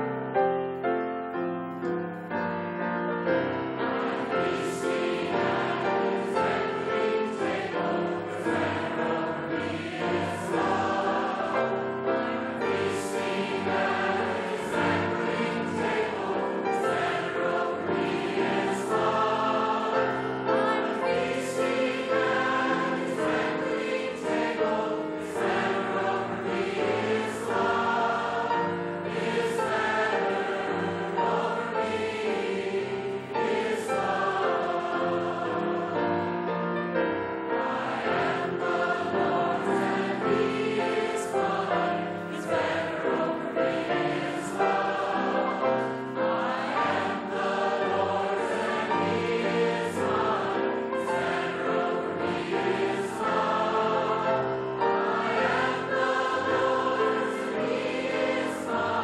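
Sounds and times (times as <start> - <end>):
congregation singing a hymn: 0.0 - 59.0.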